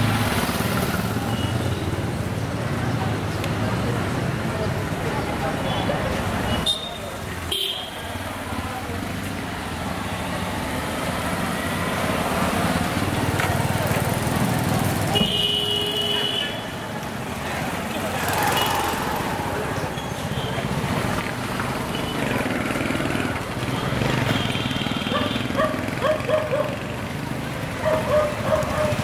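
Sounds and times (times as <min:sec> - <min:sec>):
cars and motorcycles passing: 0:00.0 - 0:29.0
voices of passers-by: 0:00.0 - 0:29.0
car horn toots: 0:15.1 - 0:16.6.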